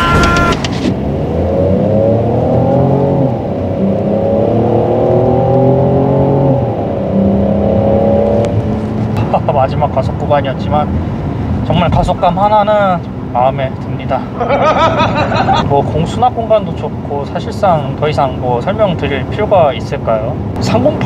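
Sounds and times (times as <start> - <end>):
car engine accelerating hard: 0.7 - 17.1.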